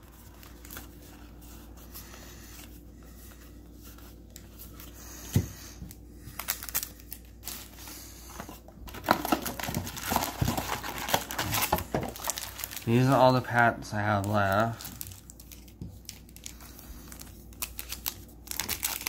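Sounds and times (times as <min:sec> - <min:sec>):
foil wrappers crinkling: 0:00.0 - 0:19.0.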